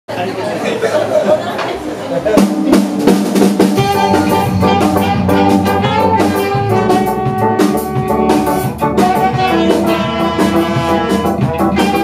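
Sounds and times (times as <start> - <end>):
people chatting: 0.1 - 2.9.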